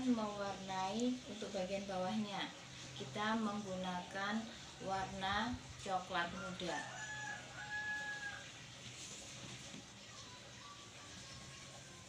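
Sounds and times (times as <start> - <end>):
rooster crowing: 6.3 - 8.6.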